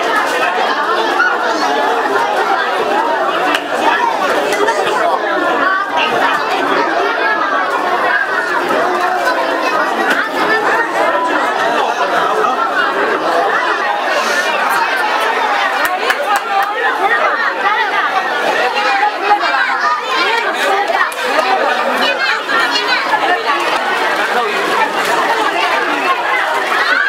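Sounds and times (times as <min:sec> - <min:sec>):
children chattering: 0:00.0 - 0:27.0.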